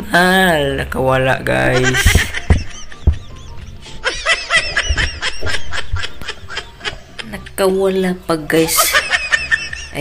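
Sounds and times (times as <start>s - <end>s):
man laughing: 1.7s - 7.6s, 8.8s - 10.0s.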